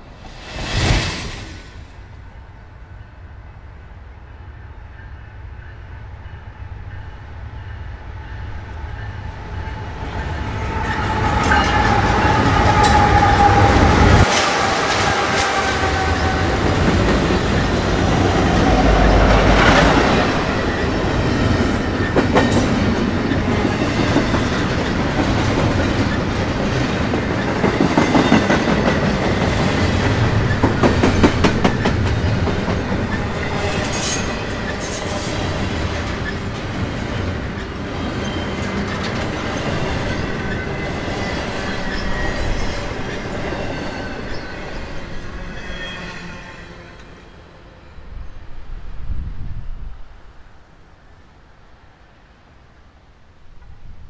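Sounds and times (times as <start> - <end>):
diesel locomotive: 0.0 - 52.5.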